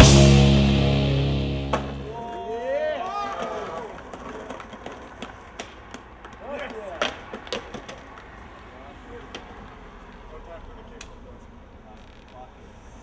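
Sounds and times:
skateboards knocking on pavement: 0:03.4 - 0:10.2.

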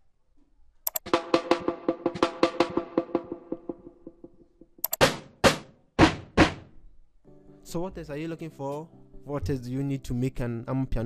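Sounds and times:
pitched drum rolls: 0:01.1 - 0:04.6.

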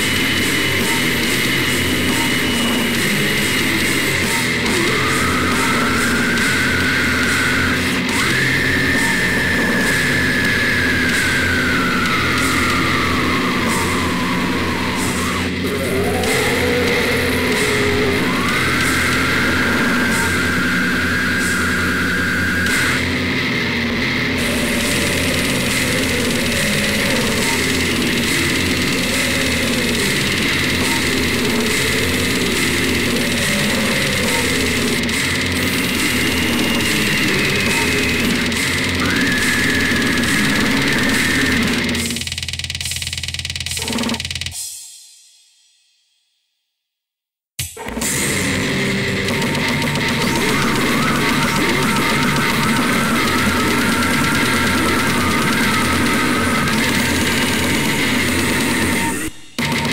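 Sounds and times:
high sliding guitar tone: 0:00.0 - 0:42.2, 0:48.0 - 0:59.9
death metal music: 0:00.0 - 0:44.4, 0:47.9 - 0:59.9.

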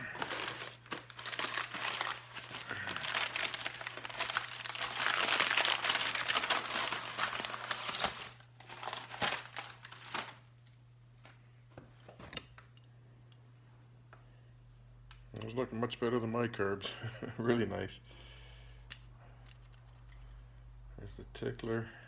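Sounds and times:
paper wrapping crinkling: 0:00.0 - 0:10.5.

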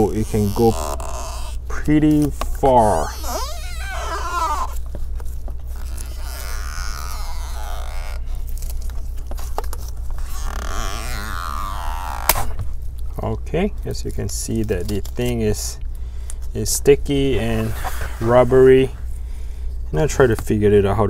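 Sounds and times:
adhesive strip creaking and squeaking: 0:00.0 - 0:05.0, 0:05.7 - 0:12.6, 0:17.4 - 0:18.4
steady low hum: 0:00.0 - 0:21.0
sharp click: 0:12.3 - 0:12.6.

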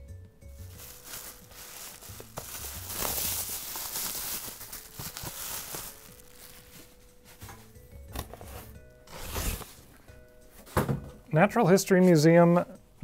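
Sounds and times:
bubble wrap crinkling: 0:00.6 - 0:07.8.

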